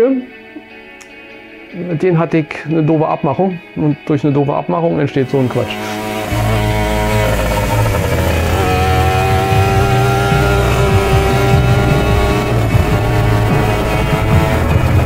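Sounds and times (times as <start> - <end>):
background music: 0.0 - 15.0
scooter engine running: 5.2 - 15.0.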